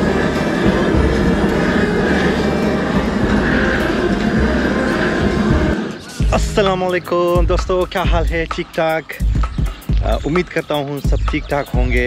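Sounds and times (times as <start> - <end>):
gas torch flame rushing: 0.0 - 6.3.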